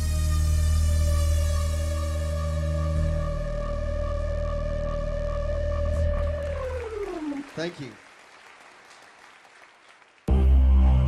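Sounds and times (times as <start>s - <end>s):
low bass drone: 0.0s - 7.5s.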